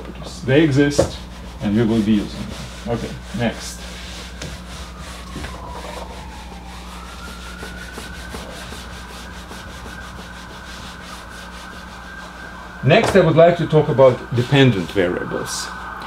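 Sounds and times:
eraser wiping whiteboard: 0:00.5 - 0:12.6.

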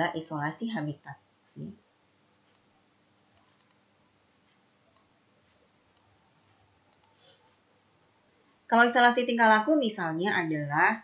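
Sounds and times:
soft hiss: 0:00.0 - 0:10.8
computer mouse clicks: 0:02.4 - 0:02.7, 0:03.3 - 0:03.9, 0:04.5 - 0:07.6.

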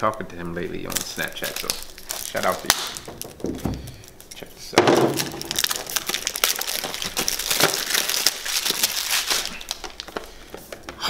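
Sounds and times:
shrink-wrap crinkling: 0:00.0 - 0:11.0.

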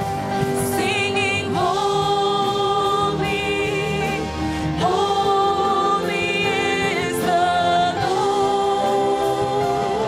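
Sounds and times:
group singing praise song: 0:00.6 - 0:10.0.

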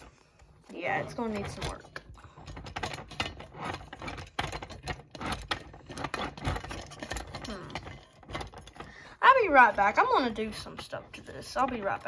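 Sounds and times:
toy train car clicking and rattling: 0:00.7 - 0:12.0.

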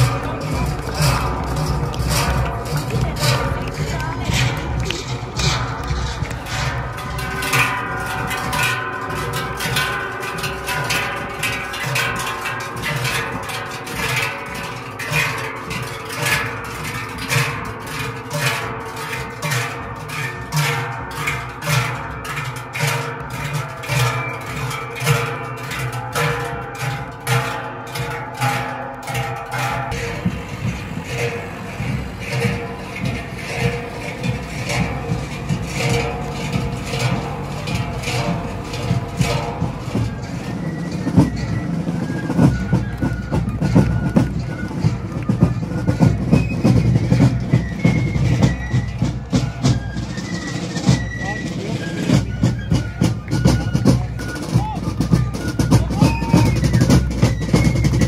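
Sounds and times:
large cowbells clanging: 0:00.0 - 0:58.0.

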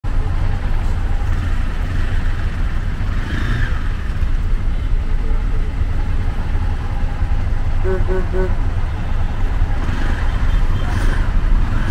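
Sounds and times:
vehicle engines idling: 0:00.0 - 0:11.9.

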